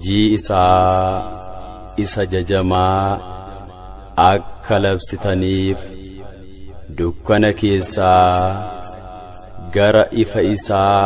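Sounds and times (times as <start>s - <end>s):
man chanting a hymn: 0.0s - 11.0s.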